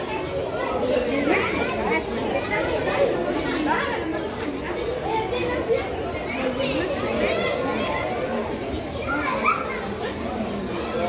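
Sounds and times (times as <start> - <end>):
children's voices: 0.0 - 11.0
overlapping chatter of people: 0.0 - 11.0.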